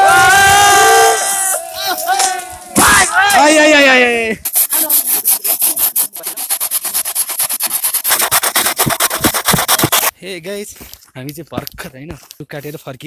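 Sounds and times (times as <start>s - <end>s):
person speaking: 1.8s - 7.3s
knife blade sawing a log: 4.5s - 10.1s.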